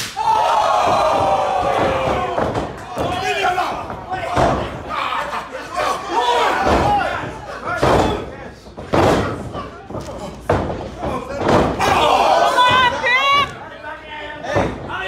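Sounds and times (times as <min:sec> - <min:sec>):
voices shouting: 0:00.2 - 0:07.8, 0:11.8 - 0:13.6.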